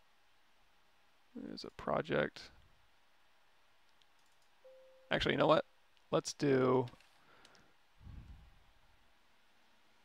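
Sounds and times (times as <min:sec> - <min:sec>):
faint computer mouse click: 0:06.9 - 0:07.7.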